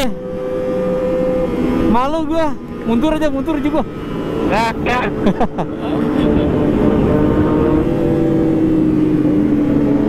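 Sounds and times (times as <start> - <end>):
motorcycle engine hum: 0.0 - 10.0
road and wind rumble: 0.0 - 10.0.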